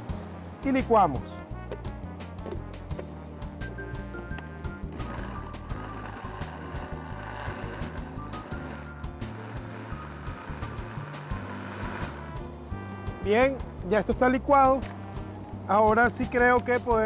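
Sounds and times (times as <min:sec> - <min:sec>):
background music with bass beat: 0:00.0 - 0:17.0
blender whirring: 0:04.2 - 0:12.8.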